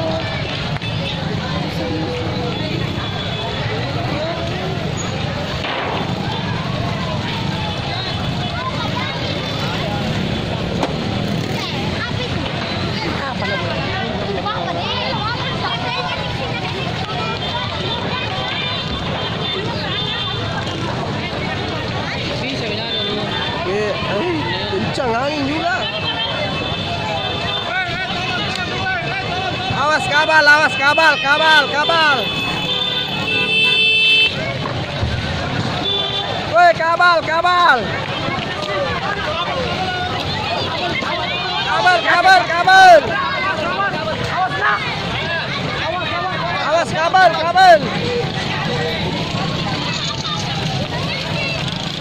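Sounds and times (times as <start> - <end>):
crowd talking and shouting: 0.0 - 52.0
motorbike engines rumbling: 0.0 - 52.0
vehicle horn: 30.6 - 34.4, 35.8 - 36.4.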